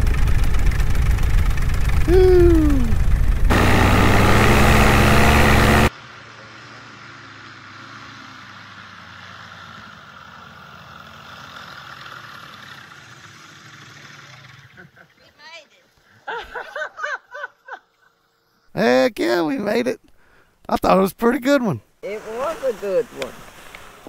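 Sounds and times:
engine running quietly at low power: 0.0 - 15.1
paramotor engine running loud: 0.0 - 15.1.

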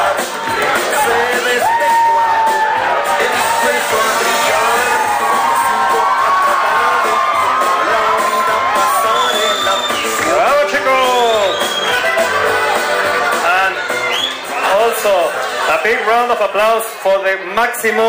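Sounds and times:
crowd cheering and whooping: 0.0 - 16.1
loud music in a hall: 0.0 - 18.0.

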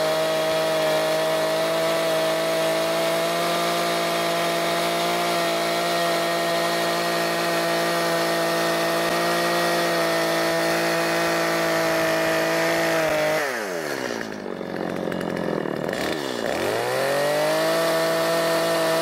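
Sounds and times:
chainsaw cutting log: 0.0 - 19.0.

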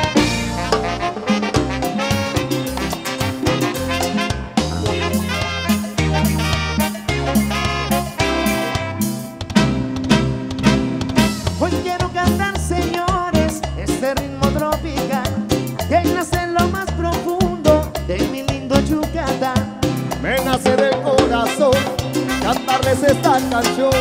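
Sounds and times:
horns playing melody: 0.0 - 11.6, 21.3 - 24.0
bass and percussion beat: 0.0 - 24.0
electric guitar melody: 0.0 - 24.0.

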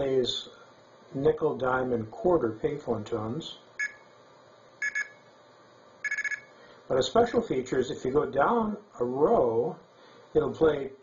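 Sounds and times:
fast run of beeps: 3.8 - 4.1, 4.8 - 5.2, 6.0 - 6.6
two-tone beeps from an earpiece: 3.8 - 4.1, 4.8 - 5.3, 6.0 - 6.6.

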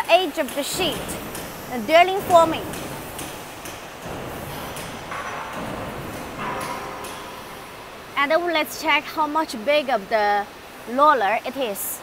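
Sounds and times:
machinery hum: 0.0 - 12.0.

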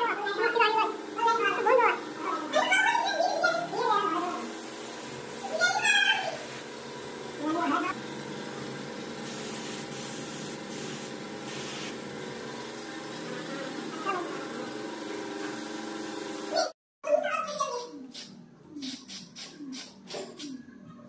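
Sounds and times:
steady background hum: 0.0 - 12.8
paint spray gun hissing: 4.4 - 6.8, 9.2 - 12.1, 15.4 - 16.6.

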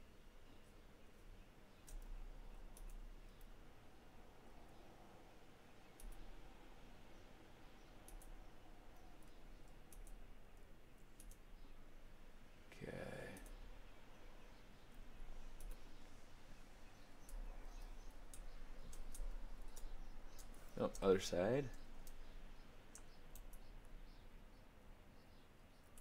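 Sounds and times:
mouse and keyboard clicks: 1.8 - 3.5, 11.2 - 11.4, 15.5 - 15.9, 17.2 - 20.6.

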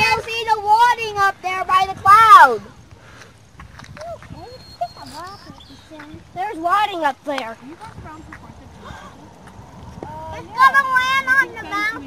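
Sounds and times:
onlookers exclaiming and murmuring: 4.0 - 12.0.

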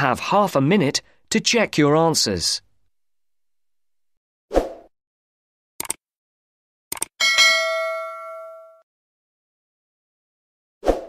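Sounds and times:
bell-like chime: 7.2 - 8.8.

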